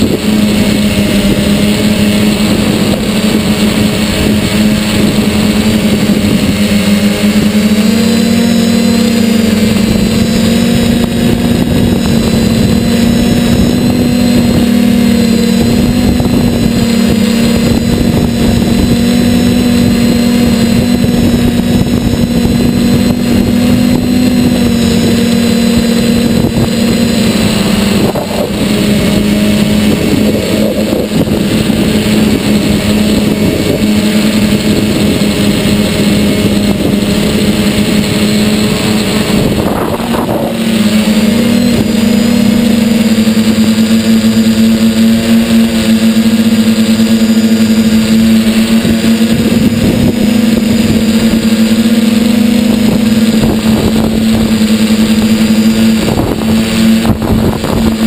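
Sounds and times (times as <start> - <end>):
model aircraft motor and propeller: 0.0 - 58.0.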